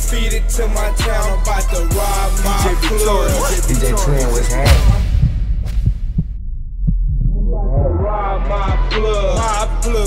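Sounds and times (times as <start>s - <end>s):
deep sustained bass: 2.5s - 8.7s
low kick drum hits: 4.6s - 8.2s.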